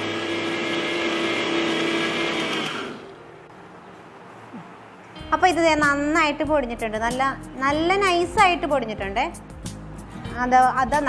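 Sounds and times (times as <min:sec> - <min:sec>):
mixer grinder motor whine: 0:00.0 - 0:03.2.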